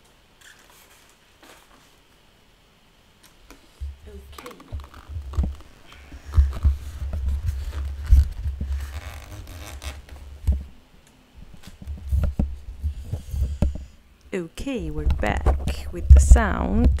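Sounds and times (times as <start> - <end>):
plastic wrap crinkling: 0.4 - 2.2, 3.3 - 10.5
low thumps and bumps: 3.8 - 9.5, 14.8 - 17.0
foam scraping: 4.5 - 10.4.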